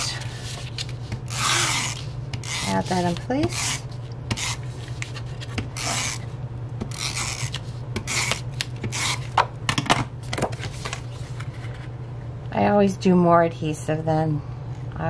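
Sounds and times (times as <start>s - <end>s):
tape dispenser strokes: 0.6s - 9.4s.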